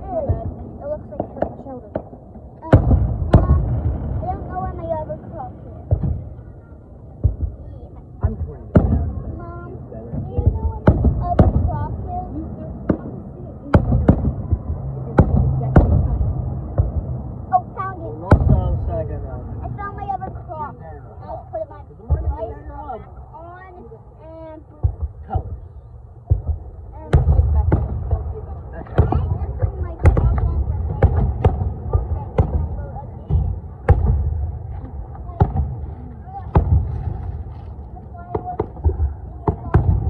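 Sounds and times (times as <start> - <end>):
fireworks bursting: 0.0 - 19.0, 24.6 - 40.0
low rolling rumble: 0.0 - 40.0.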